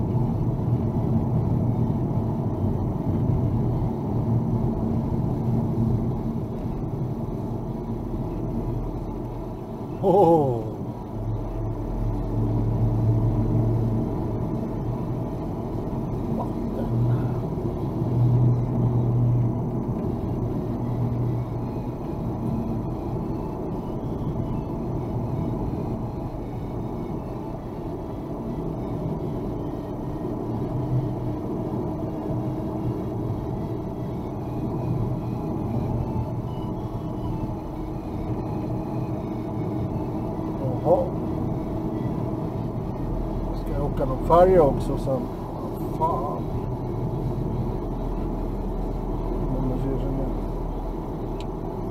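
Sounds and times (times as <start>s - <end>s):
car engine and road rumble: 0.0s - 51.9s.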